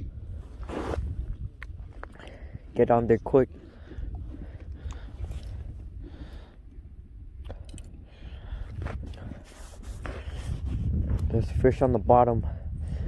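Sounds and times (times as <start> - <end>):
wind rumble on microphone: 0.0 - 13.0
faint breathing: 2.0 - 2.7, 3.5 - 6.9, 7.5 - 10.6, 12.4 - 13.0.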